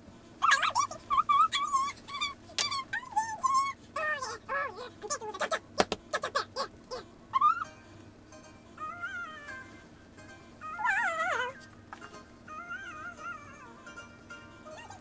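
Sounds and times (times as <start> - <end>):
high whiny voice humming: 0.2 - 8.0, 8.6 - 15.0.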